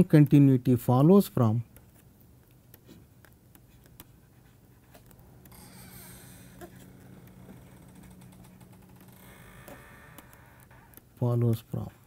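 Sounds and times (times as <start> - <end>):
low steady hum: 0.0 - 12.0
stylus scratching tablet screen: 2.7 - 11.1.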